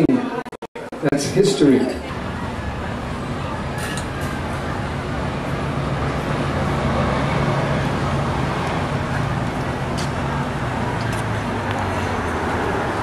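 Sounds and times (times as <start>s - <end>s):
outdoor background noise: 0.0s - 13.0s
vehicle engine running: 2.1s - 13.0s.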